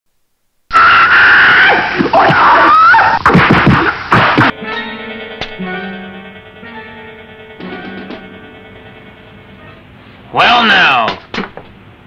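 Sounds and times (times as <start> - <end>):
high-pitched squealing sound effect: 0.7 - 3.4.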